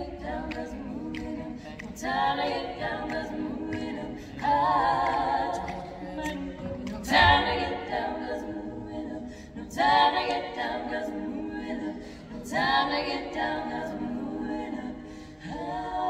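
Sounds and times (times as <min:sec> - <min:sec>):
women singing a cappella harmony: 0:00.0 - 0:16.0.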